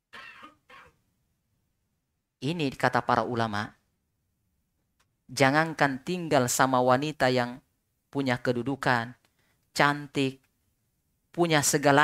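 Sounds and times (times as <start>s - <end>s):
man clearing his throat: 0.2s - 1.0s.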